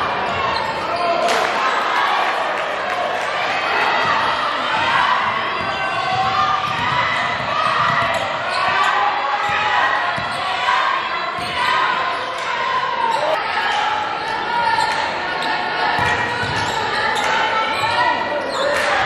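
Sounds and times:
players and spectators calling out: 0.0s - 19.0s.

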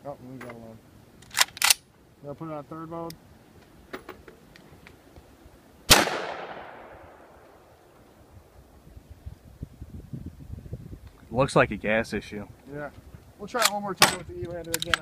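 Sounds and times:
rifle shot echoing: 5.9s - 7.9s
light handling clicks: 13.6s - 15.0s.

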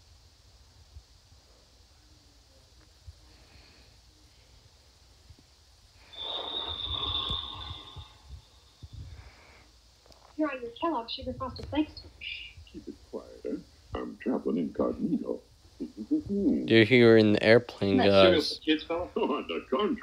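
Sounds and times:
steady high tone: 6.0s - 9.4s
video audio from tablet speaker: 6.0s - 9.6s, 10.3s - 20.0s.

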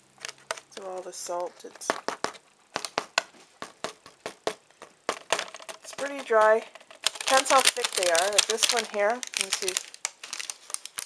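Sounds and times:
dried paste crackling under fingers: 4.0s - 11.0s.

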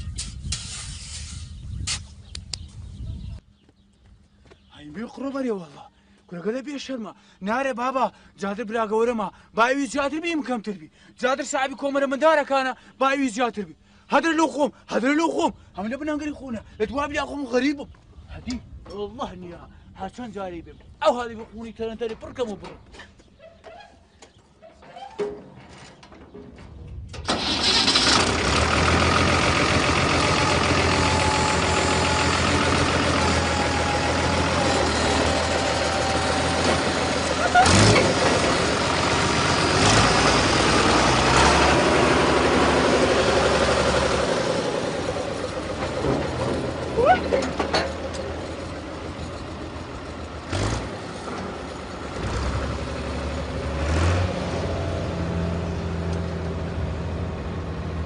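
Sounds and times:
tractor diesel engine running: 26.9s - 58.0s.

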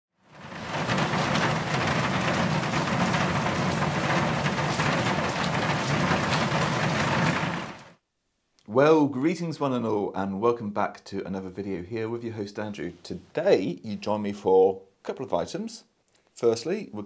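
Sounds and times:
heavy rain pouring: 0.2s - 8.0s.

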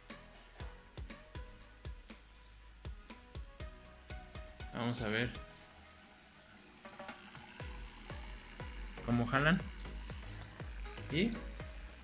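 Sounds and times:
pump humming: 0.0s - 12.0s.

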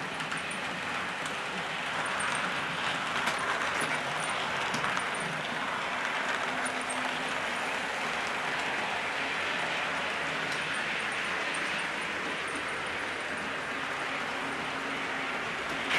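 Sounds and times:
model trains rolling on track: 0.0s - 15.9s.

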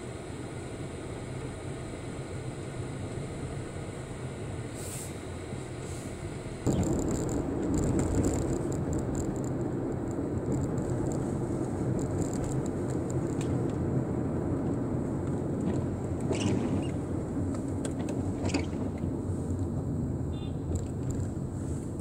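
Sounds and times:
road and engine noise in car: 0.0s - 22.0s
tyres on wet road: 4.8s - 22.0s.

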